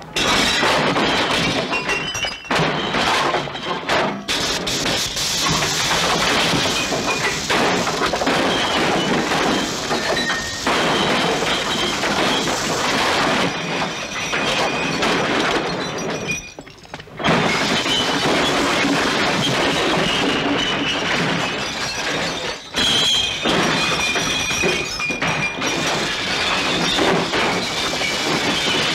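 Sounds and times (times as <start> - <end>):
glass bottles smashing: 0.2 - 4.8, 5.4 - 28.9.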